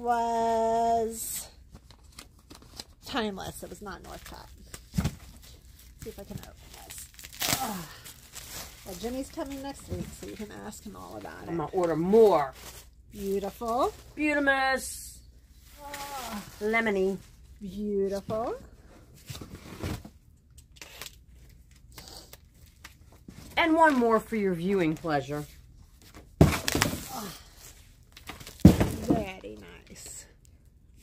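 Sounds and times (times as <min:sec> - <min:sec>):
fabric wrapping rustling: 0:04.1 - 0:14.6, 0:15.4 - 0:17.8.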